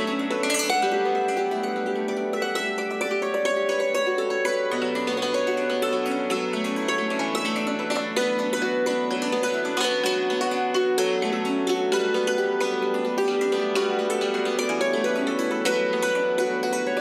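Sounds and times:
hammered dulcimer playing: 0.0 - 17.0.

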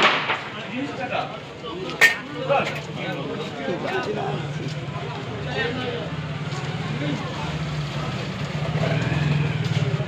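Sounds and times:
road traffic engine drone: 0.0 - 10.0
street noise: 0.0 - 10.0.

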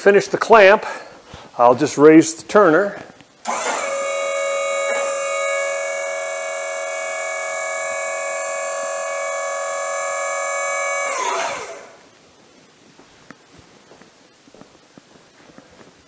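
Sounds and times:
hydraulic pump whining: 3.4 - 12.1.

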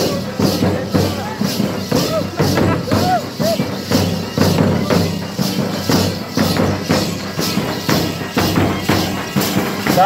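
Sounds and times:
drums beating steady rhythm: 0.0 - 10.0
jingling bells: 0.0 - 10.0.

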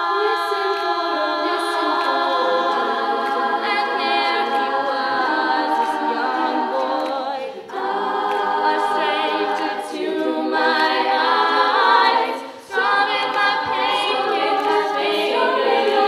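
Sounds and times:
women singing a cappella: 0.0 - 16.0.

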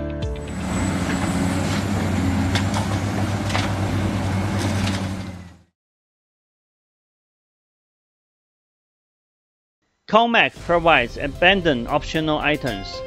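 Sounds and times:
large engine running: 0.3 - 5.7.

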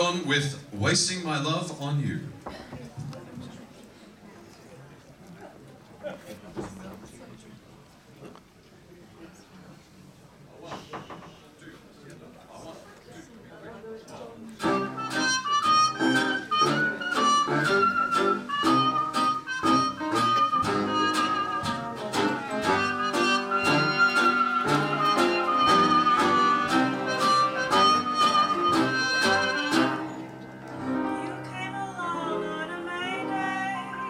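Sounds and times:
audience chatter: 0.0 - 34.0
hot jazz band playing: 14.6 - 34.0.

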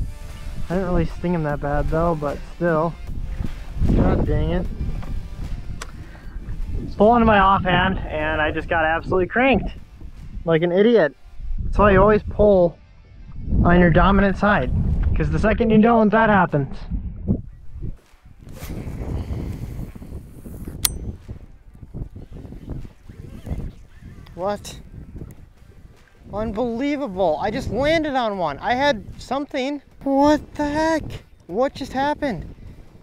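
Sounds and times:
wind rumbling on microphone: 0.0 - 10.6, 11.2 - 33.0
sharp click: 20.8 - 21.1.

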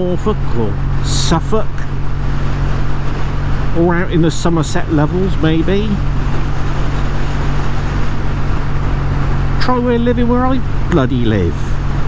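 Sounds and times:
motorcycle engine cruising: 0.0 - 12.0
wind rush over microphone: 0.0 - 12.0.

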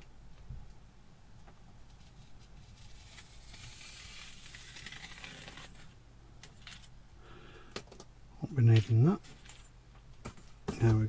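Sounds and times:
knife scraping through foam: 2.6 - 5.9.

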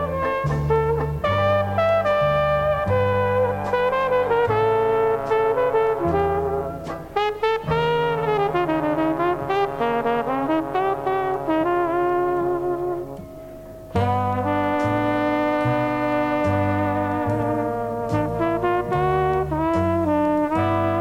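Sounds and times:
held low notes: 0.0 - 21.0
slow jazz trumpet melody: 0.0 - 21.0.

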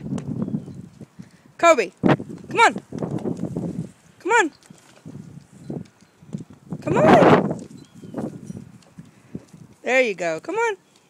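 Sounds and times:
rustling in dry grass: 2.1 - 6.8, 7.4 - 9.9.

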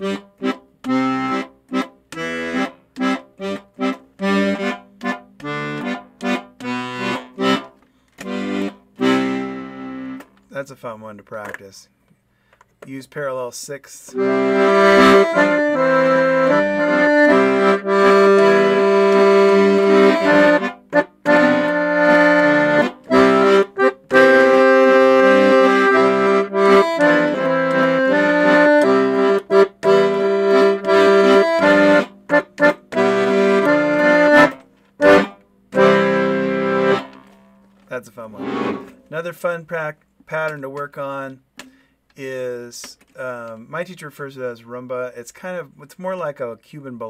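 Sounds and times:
piano accordion playing: 0.0 - 10.3, 14.1 - 39.4.

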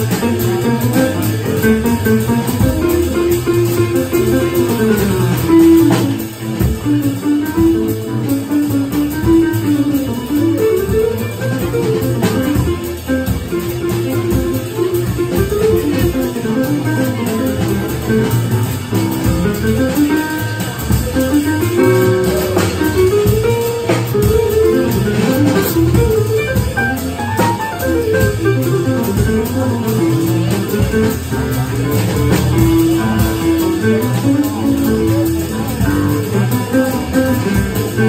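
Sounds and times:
drum kit: 0.0 - 38.0
upright bass: 0.0 - 38.0.

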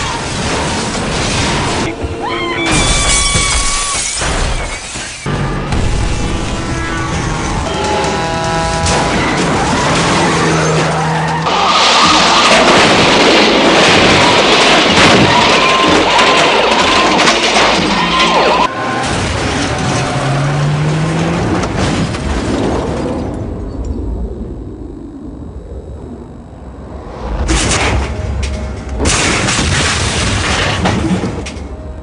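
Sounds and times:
car crashing and scraping: 0.0 - 2.1, 2.7 - 23.4, 27.4 - 31.9
tyre squeals: 2.2 - 5.2
vehicle engine rising in pitch: 5.3 - 11.4, 23.4 - 28.9.

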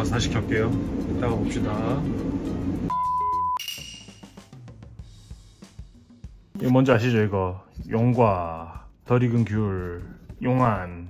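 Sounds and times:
electronic beep: 2.9 - 4.4
bright ringing chime: 2.9 - 4.5.

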